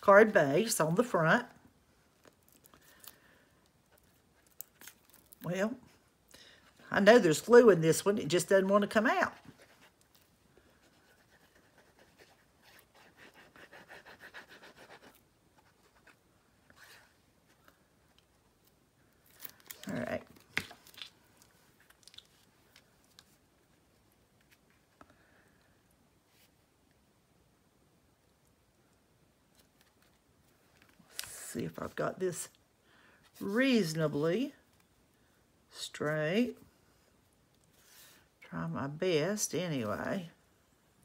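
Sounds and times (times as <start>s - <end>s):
crisp paper crackles: 16.7s - 23.4s.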